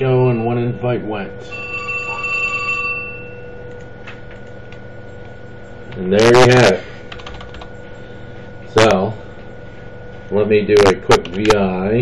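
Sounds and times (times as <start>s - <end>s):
bell-like chime: 0.0s - 3.5s
faint background whine: 0.0s - 12.0s.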